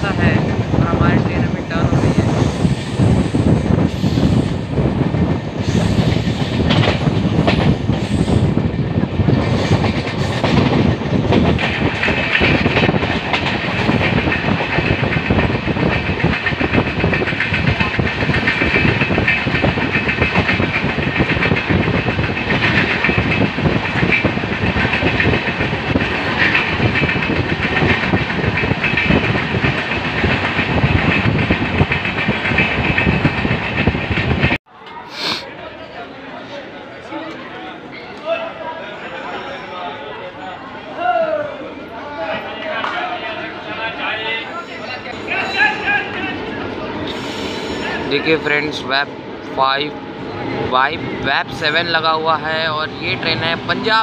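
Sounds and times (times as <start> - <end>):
train wheels clickety-clack on rails: 0.0 - 34.6.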